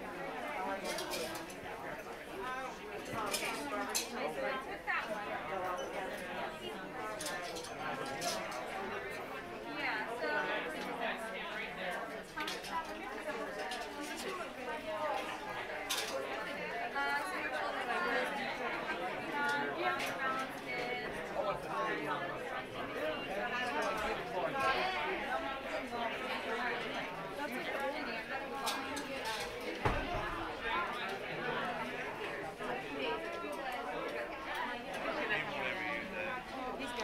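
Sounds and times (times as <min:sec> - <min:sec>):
chatter of people talking: 0:00.0 - 0:37.0.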